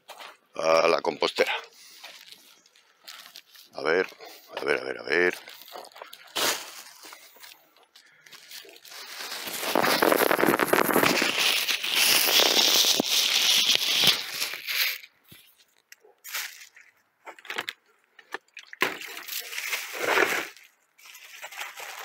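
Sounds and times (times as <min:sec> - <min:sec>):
plastic bag crinkling: 0:01.2 - 0:16.9, 0:19.0 - 0:22.0.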